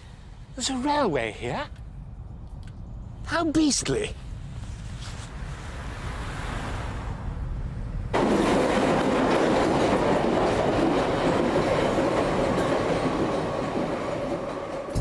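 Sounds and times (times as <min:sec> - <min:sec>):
train running along tracks: 0:08.0 - 0:15.0.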